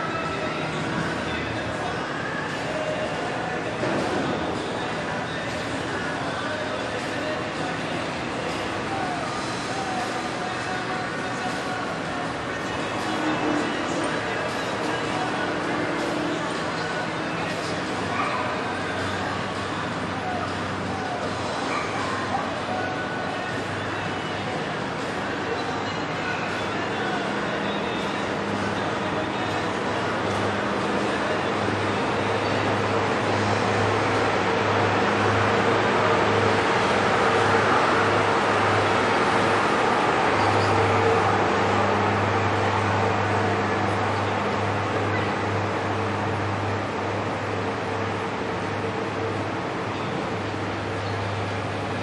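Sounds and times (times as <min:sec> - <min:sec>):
background voices: 0:00.0 - 0:52.0
low mechanical hum: 0:00.0 - 0:52.0.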